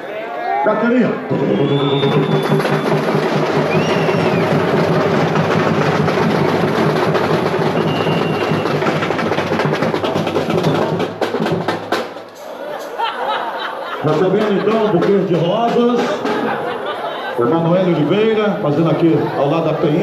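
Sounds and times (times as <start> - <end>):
samba drums playing: 1.3 - 12.3.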